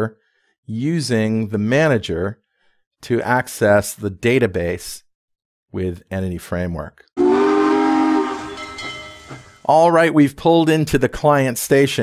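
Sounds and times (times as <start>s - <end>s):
train whistle: 7.2s - 9.5s.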